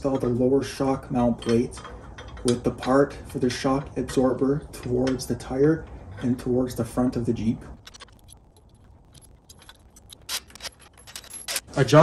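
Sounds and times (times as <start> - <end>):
metal parts clinking and jingling: 1.3 - 3.1, 7.8 - 12.0
sharp metallic clicks: 7.8 - 11.8.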